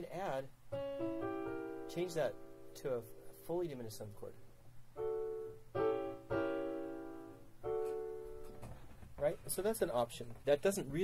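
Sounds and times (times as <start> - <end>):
piano chords: 0.0 - 8.7.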